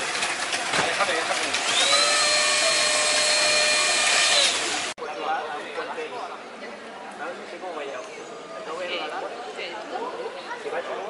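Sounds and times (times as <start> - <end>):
slot car motors whining: 1.5 - 5.0.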